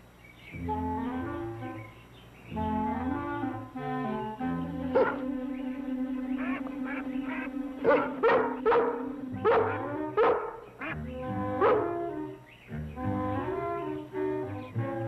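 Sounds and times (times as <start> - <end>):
dog barking: 4.9 - 5.3, 7.8 - 10.7, 11.6 - 12.0
orchestral music: 10.9 - 15.0.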